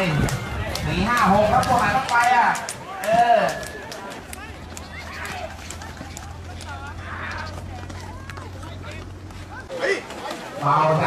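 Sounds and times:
hooves galloping on dirt: 0:00.0 - 0:11.0
spectators calling and shouting: 0:00.0 - 0:11.0.

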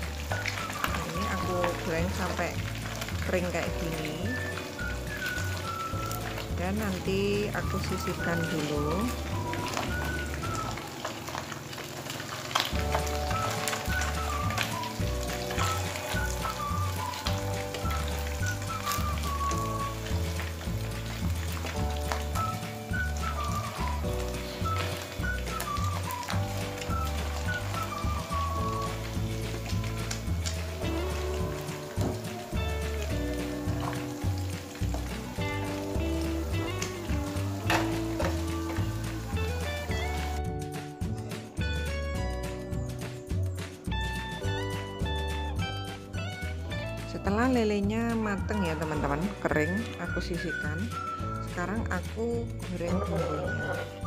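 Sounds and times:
wooden spatula turning food: 0:00.0 - 0:40.4
fish sizzling in hot oil: 0:00.0 - 0:40.8, 0:43.6 - 0:54.0
background music with steady beat: 0:00.0 - 0:54.0.

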